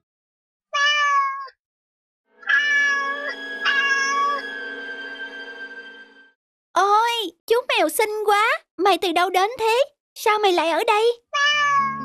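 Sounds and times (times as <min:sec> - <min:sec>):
cartoon kitten meowing: 0:00.7 - 0:01.6, 0:02.4 - 0:04.4, 0:11.3 - 0:12.0.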